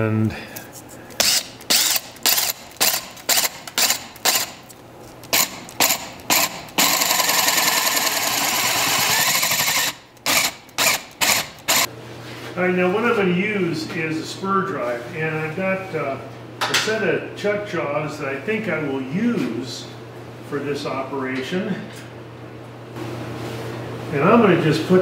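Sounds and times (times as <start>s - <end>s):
cordless drill boring wood: 1.2s - 4.6s, 5.3s - 11.9s.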